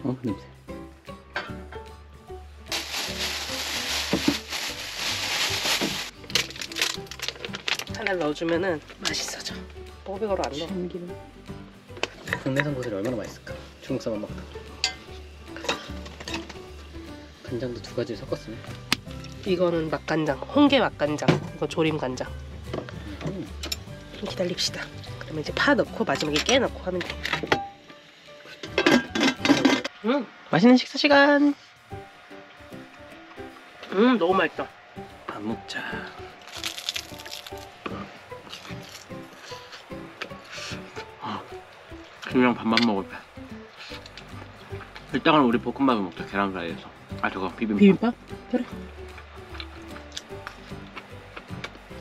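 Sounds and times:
background music: 0:00.0 - 0:52.0
stems sizzling in a hot pot: 0:00.0 - 0:52.0.

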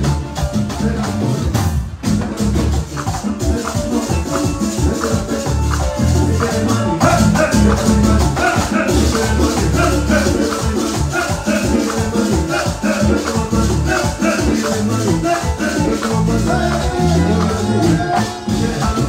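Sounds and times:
congas played by hand: 0:00.0 - 0:19.0
latin dance band playing: 0:00.0 - 0:19.0
shaker percussion: 0:00.0 - 0:19.0.

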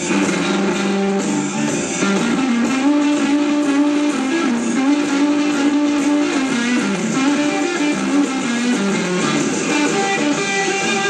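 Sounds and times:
electric guitar bending notes: 0:00.0 - 0:11.0
live blues band playing: 0:00.0 - 0:11.0.

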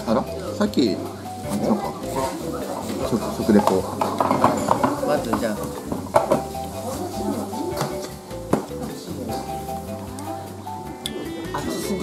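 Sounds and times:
background music with melody: 0:00.0 - 0:12.0.

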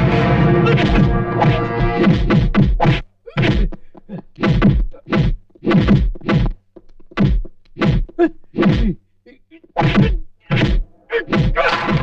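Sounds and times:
comic whack sound effects: 0:00.6 - 0:03.7, 0:09.8 - 0:12.0.

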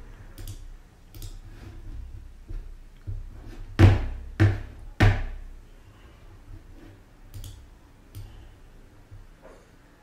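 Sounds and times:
computer mouse clicks: 0:00.4 - 0:01.4, 0:07.3 - 0:08.4.

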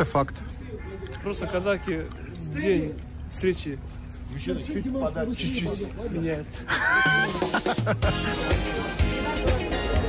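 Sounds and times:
music with pulsing beat: 0:07.2 - 0:10.0.

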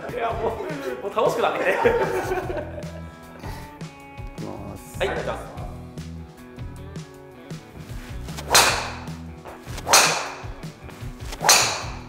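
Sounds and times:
background music: 0:00.0 - 0:12.0
golf club swishing strike: 0:07.8 - 0:12.0.

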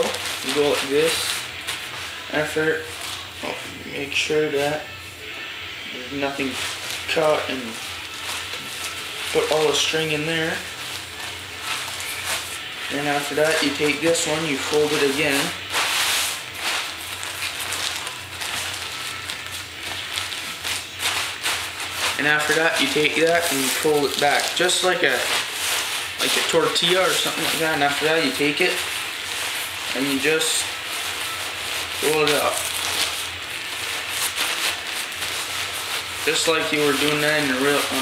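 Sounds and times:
kite fabric rustling: 0:00.0 - 0:05.0, 0:06.0 - 0:38.0.

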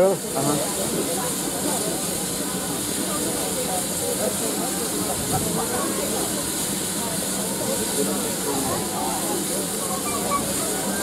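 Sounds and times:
steam hissing: 0:00.0 - 0:11.0.

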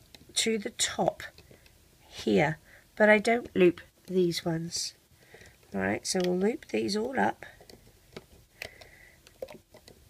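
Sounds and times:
crochet hook clicking on pegs: 0:05.7 - 0:10.0.

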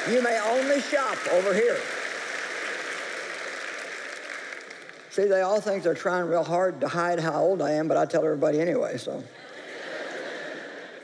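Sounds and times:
large audience applauding: 0:00.0 - 0:05.8.

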